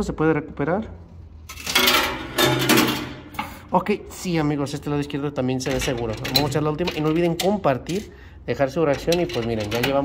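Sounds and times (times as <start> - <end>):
metal coins clattering: 1.5 - 3.2.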